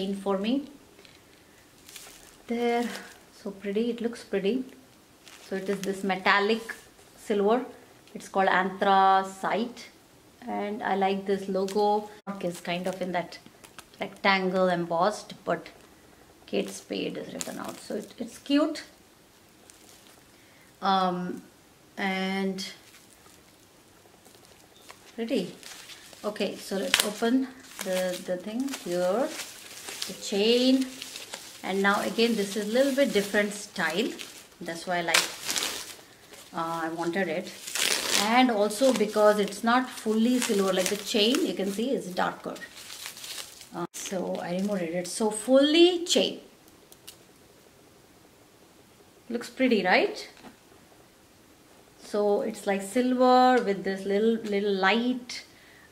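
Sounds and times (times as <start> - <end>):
tissue paper rustling: 1.8 - 3.3, 5.2 - 6.9, 16.5 - 18.9, 19.5 - 20.4, 22.6 - 45.0.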